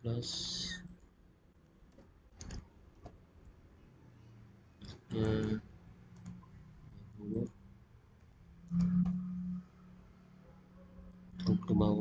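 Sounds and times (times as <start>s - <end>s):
computer mouse clicking: 1.9s - 3.6s, 4.8s - 7.1s.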